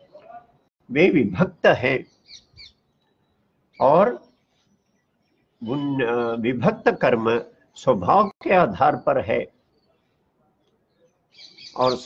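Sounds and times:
small bird chirping: 2.0s - 7.9s, 9.6s - 12.0s
person speaking: 5.6s - 9.5s.

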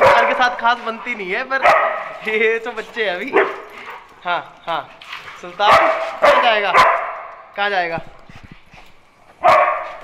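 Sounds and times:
dog barking: 0.0s - 0.7s, 1.6s - 2.2s, 3.3s - 3.7s, 5.6s - 7.4s, 9.4s - 10.0s.

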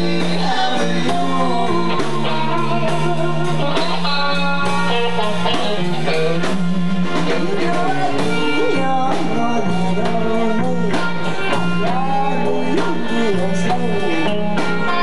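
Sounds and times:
bass guitar: 0.0s - 15.0s
drum kit: 0.0s - 15.0s
electric guitar: 0.0s - 15.0s.

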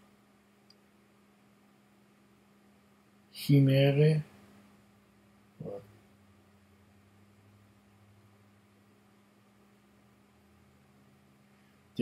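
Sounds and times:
faint steady hum: 0.0s - 12.0s
short vocal sound: 5.6s - 5.9s.

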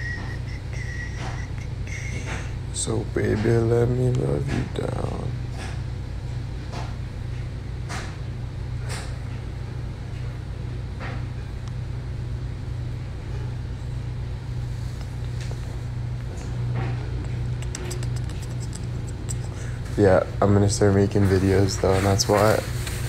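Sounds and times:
steady low-pitched hum: 0.0s - 23.0s.

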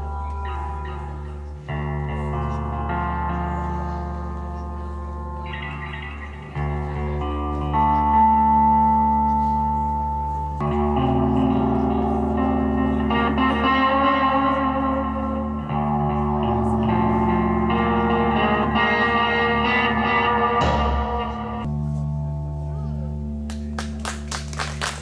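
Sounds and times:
electric guitar chords with echo: 0.0s - 24.2s.

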